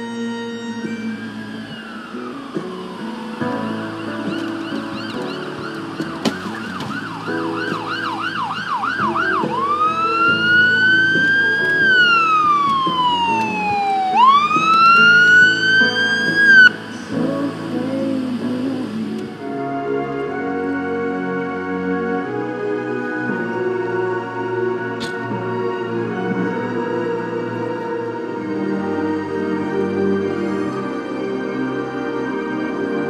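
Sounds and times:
electronic siren yelp and wail: 0.0s - 16.8s
background music: 0.0s - 33.0s.

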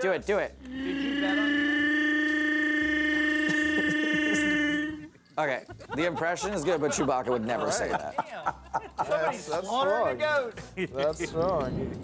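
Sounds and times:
man's long growling vocal call: 0.6s - 5.1s.

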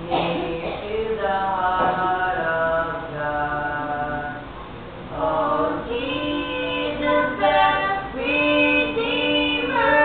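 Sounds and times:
girl and boy singing unaccompanied: 0.1s - 10.0s.

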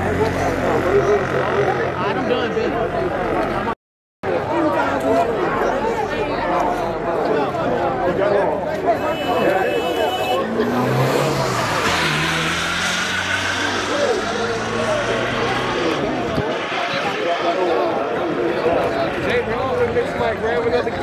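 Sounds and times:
people talking and calling out: 0.0s - 21.0s
truck engine driving past: 10.4s - 17.9s.

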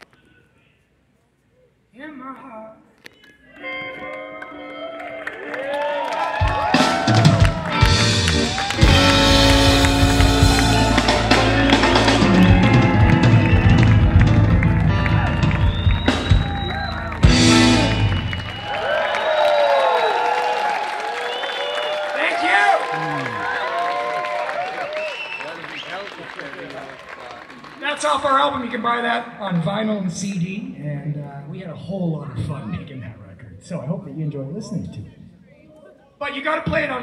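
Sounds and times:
crowd shouting: 5.4s - 25.0s
drums: 6.2s - 18.8s
bass: 6.3s - 19.0s
electric guitar with bent notes: 6.4s - 18.7s.

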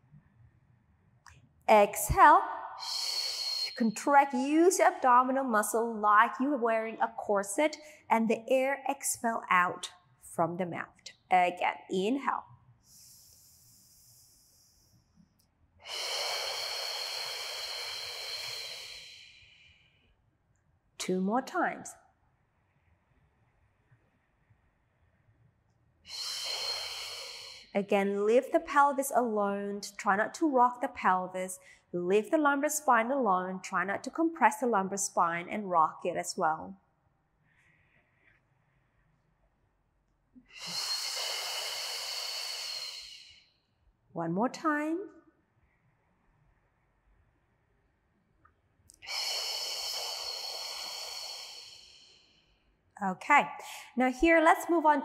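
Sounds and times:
woman exhaling through mouth: 2.8s - 3.8s, 15.9s - 19.4s, 26.1s - 27.7s, 40.5s - 43.4s, 49.0s - 52.2s
woman inhaling through nose: 2.8s - 3.8s, 12.8s - 15.0s, 15.8s - 19.6s, 26.1s - 27.7s, 40.4s - 43.5s, 49.0s - 52.5s.

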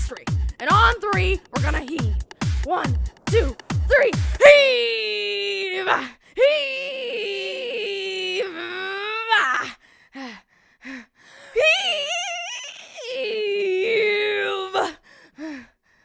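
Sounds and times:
person straining cries: 5.7s - 9.8s, 11.6s - 14.9s.

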